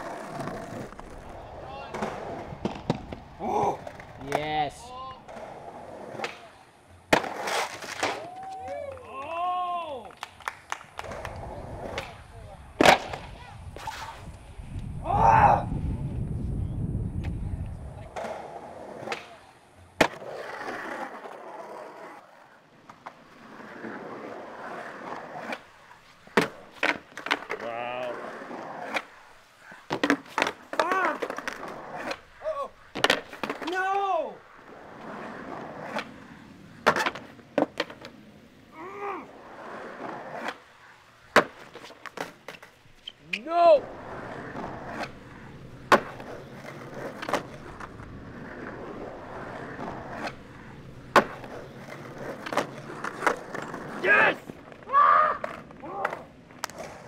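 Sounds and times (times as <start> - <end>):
skateboard cracking and clattering: 0.0 - 9.4, 10.0 - 14.3, 18.0 - 38.2, 39.4 - 43.2, 43.9 - 57.0
skateboard wheels rolling on concrete: 0.0 - 57.0.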